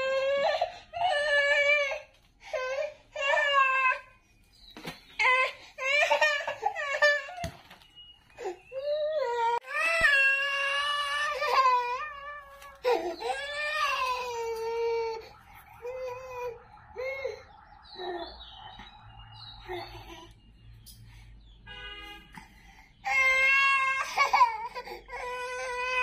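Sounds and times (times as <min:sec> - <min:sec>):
toddler crying: 0:08.4 - 0:15.2, 0:23.0 - 0:26.0.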